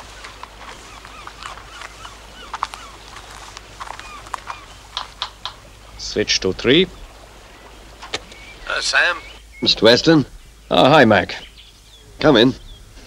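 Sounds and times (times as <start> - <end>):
gulls calling: 0.0 - 13.0.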